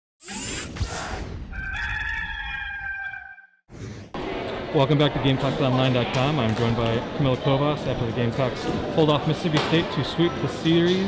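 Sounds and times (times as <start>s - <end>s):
rooster crowing: 1.5s - 3.6s.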